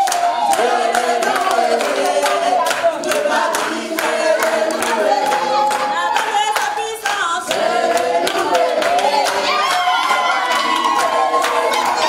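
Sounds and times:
congregation singing: 0:00.0 - 0:12.0
hand clapping: 0:00.0 - 0:12.0.

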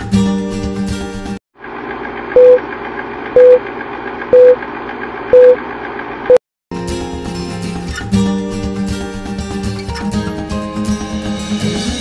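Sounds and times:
short loud beeps: 0:02.4 - 0:02.6, 0:03.4 - 0:03.6, 0:04.4 - 0:04.6, 0:05.4 - 0:05.6
background music: 0:06.8 - 0:12.0.

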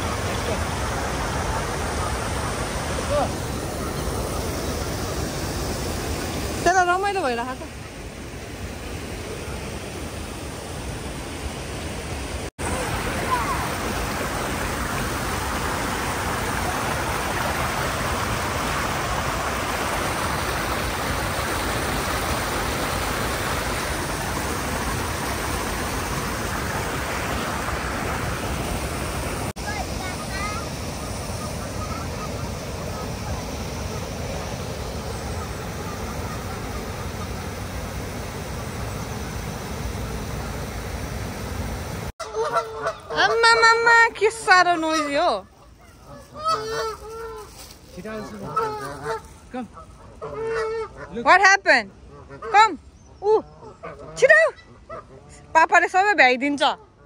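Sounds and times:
water rushing over weir: 0:00.0 - 0:45.8.

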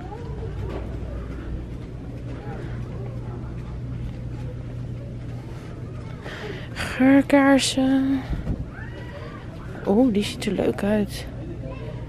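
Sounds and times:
low hum of shop background: 0:00.0 - 0:12.0.

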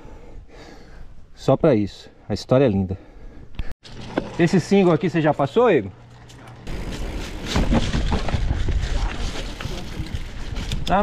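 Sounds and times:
bike tyre and wind rumble: 0:06.6 - 0:11.0
bike knocks and rattles: 0:06.7 - 0:11.0.

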